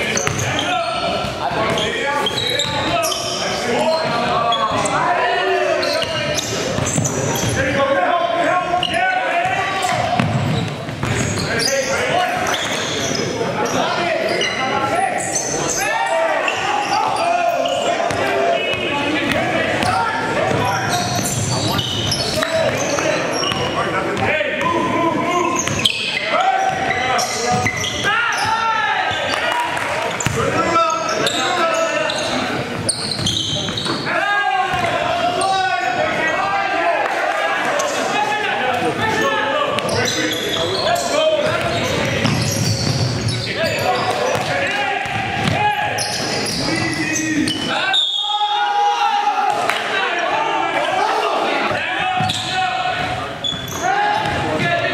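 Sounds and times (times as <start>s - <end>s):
sneakers squeaking: 0.0s - 36.8s, 37.6s - 48.7s, 50.8s - 54.9s
players calling out: 0.0s - 54.9s
basketball bouncing on hardwood: 10.2s - 11.3s.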